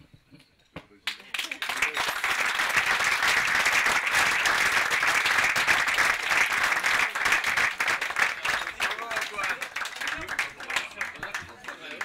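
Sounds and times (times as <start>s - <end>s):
audience applauding: 1.1s - 12.0s.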